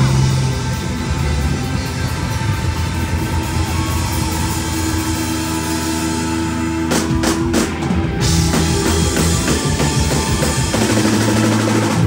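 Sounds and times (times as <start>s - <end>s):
electric bass: 0.0s - 12.0s
live rock band playing: 0.0s - 12.0s.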